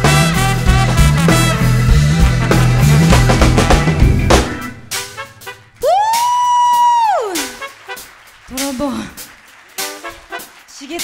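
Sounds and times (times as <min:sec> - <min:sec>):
funk band playing: 0:00.0 - 0:11.0.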